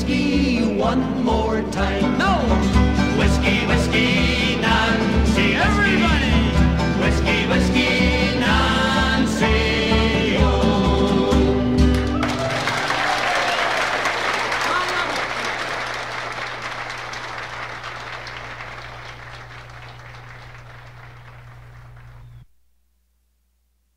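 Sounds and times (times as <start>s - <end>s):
folk band chord: 0.0s - 12.2s
audience applause: 11.9s - 22.4s.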